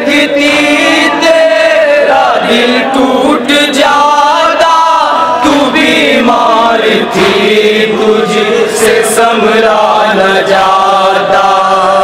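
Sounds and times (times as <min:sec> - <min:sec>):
men chanting a lament over microphones: 0:00.0 - 0:12.0.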